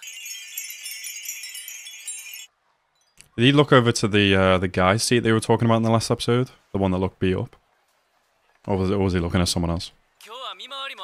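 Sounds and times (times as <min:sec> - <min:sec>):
wind chimes tinkling: 0:00.0 - 0:03.7.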